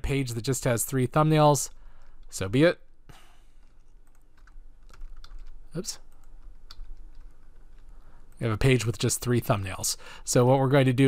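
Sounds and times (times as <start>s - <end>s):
computer keyboard clicks: 3.7s - 5.6s, 6.2s - 7.9s.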